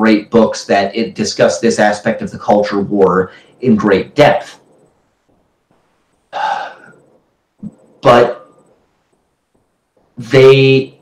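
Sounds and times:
man speaking: 0.0 - 4.7, 7.6 - 8.7, 10.2 - 11.0.

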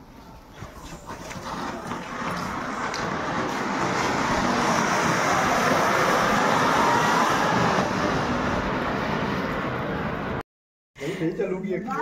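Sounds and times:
firework fountain hissing: 0.6 - 9.3.

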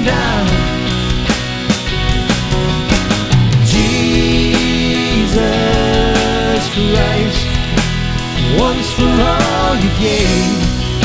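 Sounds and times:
drum kit: 0.0 - 11.0
electric guitars: 0.0 - 11.0
sustained chords: 0.0 - 11.0.

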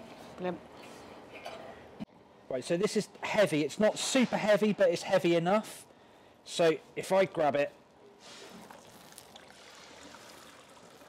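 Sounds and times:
liquid trickling into kettle: 8.5 - 11.0.

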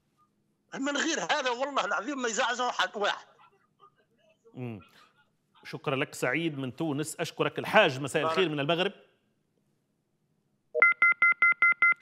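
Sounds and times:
telephone line beeps: 10.8 - 12.0.

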